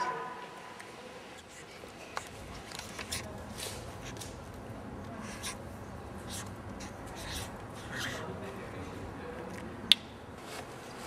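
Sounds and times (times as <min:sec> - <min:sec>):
marker scratching on paper: 0:05.2 - 0:05.6, 0:06.2 - 0:08.3.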